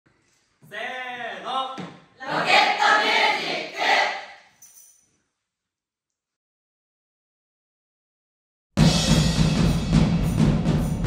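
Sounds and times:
young voices calling in unison: 2.2 - 4.2.

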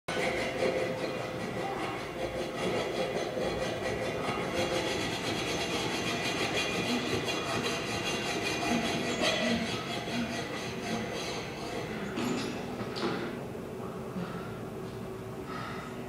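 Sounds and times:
hacksaw rasping on metal chain: 0.1 - 12.7.

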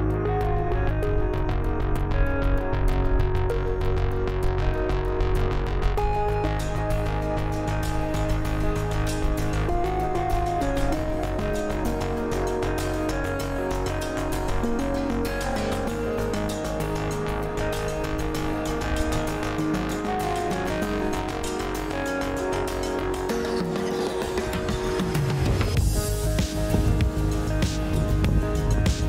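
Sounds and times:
background music sustained notes: 0.0 - 29.0.

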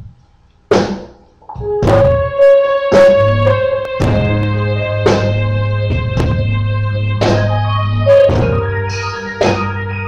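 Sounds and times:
drum hit: 0.8 - 9.7
live band struck chord: 1.5 - 10.0.

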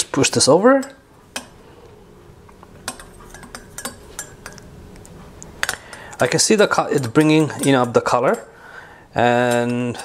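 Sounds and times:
faint steady hum: 0.0 - 10.0
spoon clinking against glass cup: 2.9 - 4.7.

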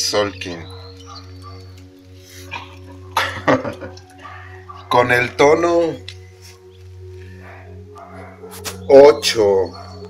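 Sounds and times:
dog barking: 0.5 - 1.8, 2.4 - 3.4, 4.1 - 5.0, 7.4 - 9.0, 9.6 - 10.0.

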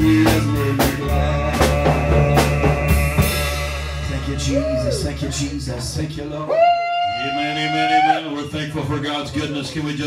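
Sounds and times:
man singing a long high note: 0.0 - 5.5.

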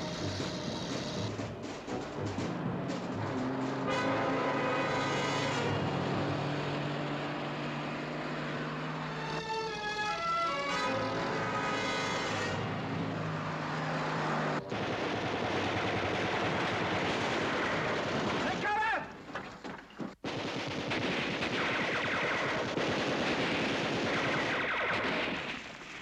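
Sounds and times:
machine-gun fire: 14.6 - 18.7, 20.2 - 25.7.

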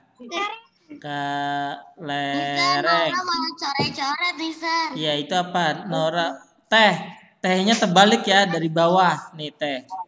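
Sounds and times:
children talking sing-song: 2.4 - 4.9.

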